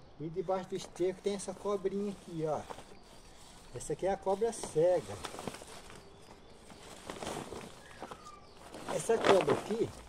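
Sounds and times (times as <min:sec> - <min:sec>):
plastic tarp rustling and crinkling: 0:01.4 - 0:10.0
scuffs and clicks: 0:01.4 - 0:10.0.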